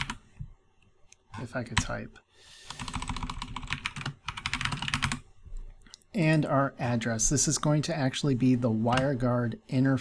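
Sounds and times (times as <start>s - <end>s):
typing on computer keyboard: 0.0s - 0.2s, 2.7s - 5.2s.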